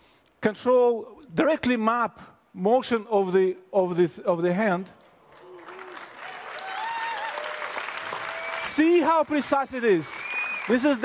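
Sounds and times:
audience applause: 5.3 - 11.0.

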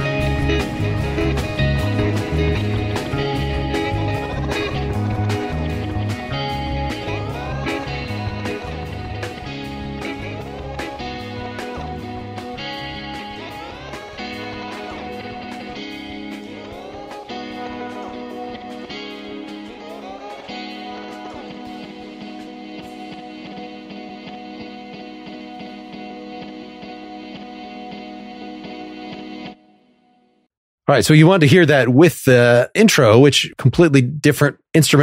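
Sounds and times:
low bass notes: 0.0 - 16.3
picked guitar notes: 0.0 - 29.9.

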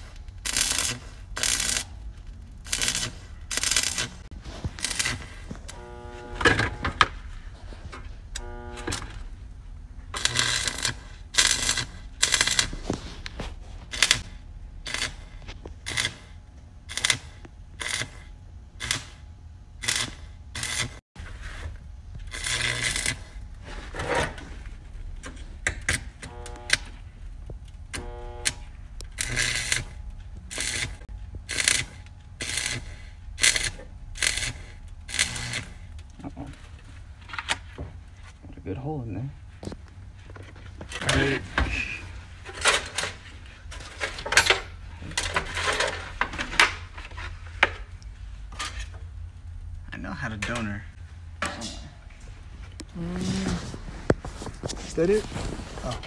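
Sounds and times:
arc welder crackling: 0.0 - 56.0.

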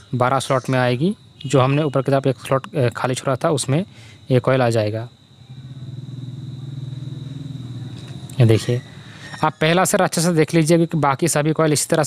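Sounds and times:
faint high whine: 0.0 - 11.9.

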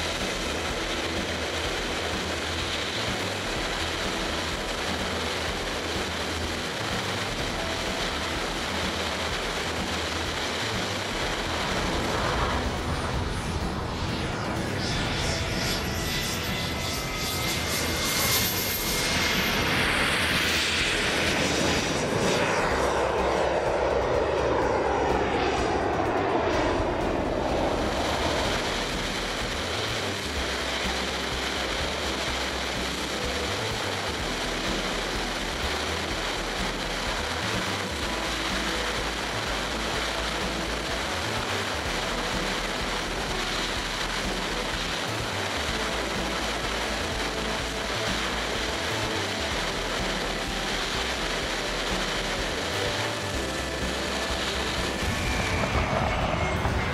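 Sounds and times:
model jet turbine whine: 0.0 - 56.9
rush of engine and air: 0.0 - 56.9.

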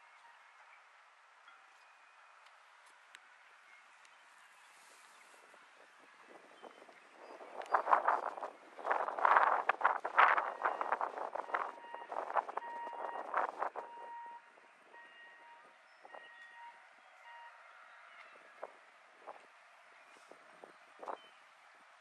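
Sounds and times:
faint short beeps: 10.4 - 17.6.

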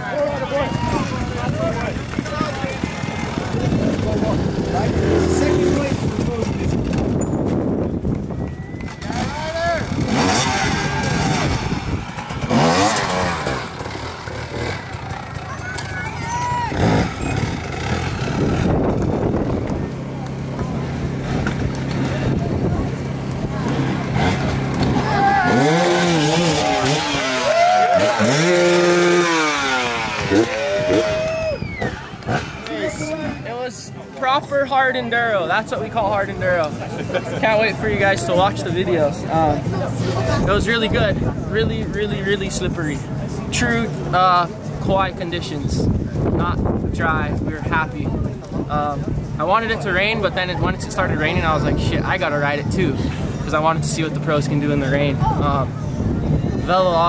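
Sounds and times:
dirt bike engine revving: 0.7 - 7.2, 8.8 - 33.6
spectators calling out: 14.6 - 17.8.

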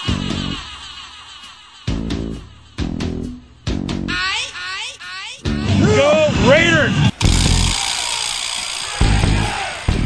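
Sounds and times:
distorted rock music: 5.5 - 10.0
person shouting: 5.6 - 7.1.

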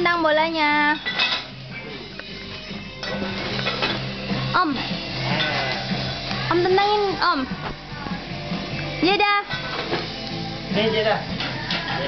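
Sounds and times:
music from a television: 0.8 - 12.0
serving dishes clinking: 0.9 - 2.0, 2.9 - 6.2, 11.3 - 12.0.

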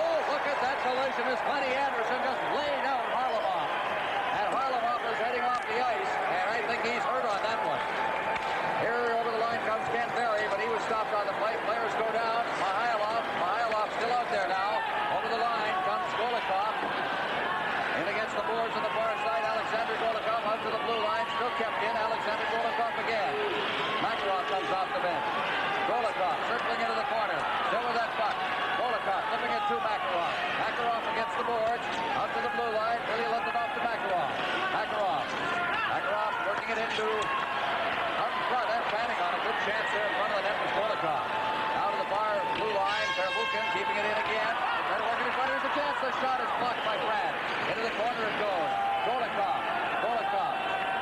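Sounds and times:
crowd talking and calling out: 0.0 - 51.0.

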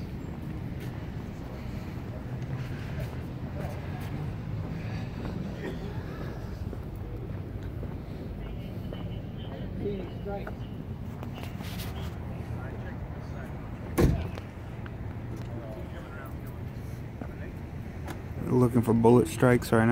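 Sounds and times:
distant road traffic: 0.0 - 19.9
faint distant voices talking: 0.0 - 19.9.

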